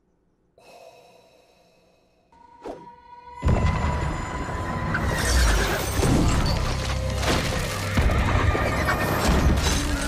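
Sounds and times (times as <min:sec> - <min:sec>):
music: 0:02.4 - 0:10.0.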